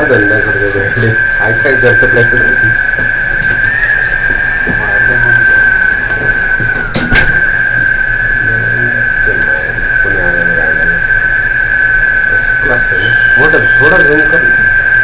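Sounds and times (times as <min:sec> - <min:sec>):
crane machinery whining: 0:00.0 - 0:15.0.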